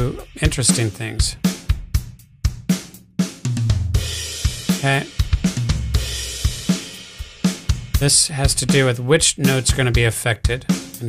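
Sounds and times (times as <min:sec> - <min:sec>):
acoustic drum kit beat: 0:00.0 - 0:11.0.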